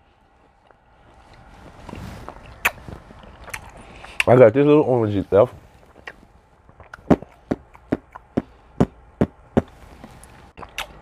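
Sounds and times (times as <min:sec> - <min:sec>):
wet chewing with mouth clicks: 0:00.3 - 0:04.3, 0:05.8 - 0:08.9, 0:09.6 - 0:11.0.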